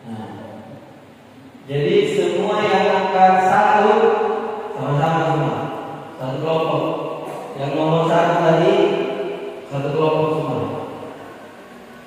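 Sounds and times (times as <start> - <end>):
man chanting recitation: 1.7 - 10.9.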